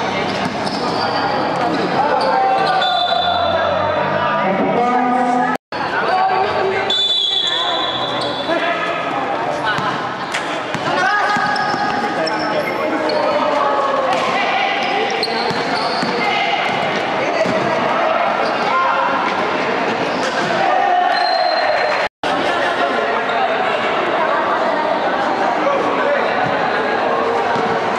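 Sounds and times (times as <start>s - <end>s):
players' voices and chatter: 0.0s - 27.9s
basketball bouncing on court: 10.7s - 12.1s, 15.2s - 17.7s.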